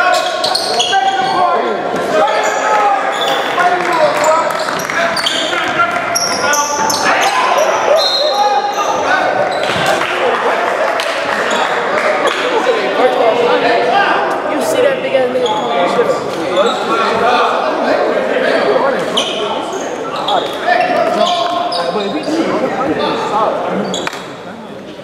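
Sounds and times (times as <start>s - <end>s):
indistinct voices in echoing hall: 0.0s - 25.0s.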